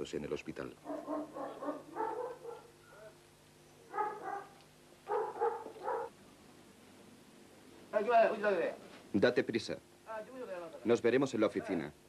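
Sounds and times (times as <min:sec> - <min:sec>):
dog barking: 0:00.8 - 0:03.2, 0:03.9 - 0:06.2.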